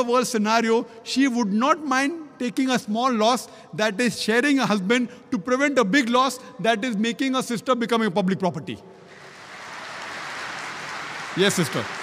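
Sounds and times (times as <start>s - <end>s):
audience applauding: 9.1s - 12.0s.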